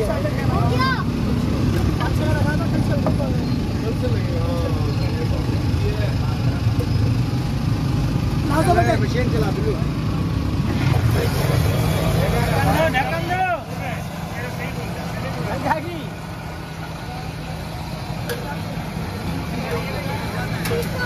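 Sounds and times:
road traffic rumble: 0.0s - 21.0s
voices talking: 0.0s - 21.0s.

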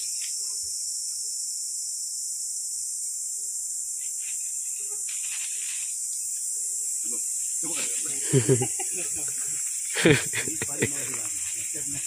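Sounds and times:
insect chorus droning: 0.0s - 12.0s.

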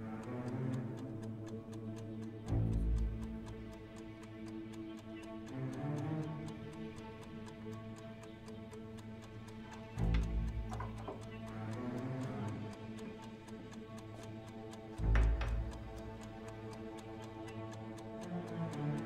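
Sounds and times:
chess clock ticking rapidly: 0.0s - 19.0s
low tense film score: 0.0s - 19.0s.

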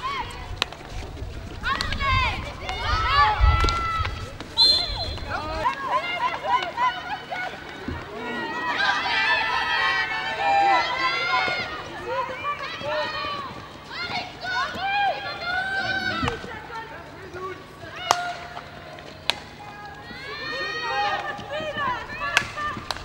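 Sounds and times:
women calling and shouting: 1.6s - 17.2s, 19.6s - 23.0s.

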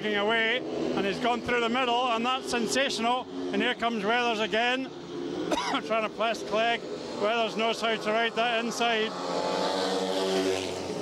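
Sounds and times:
motorcycle engines racing: 0.0s - 11.0s.

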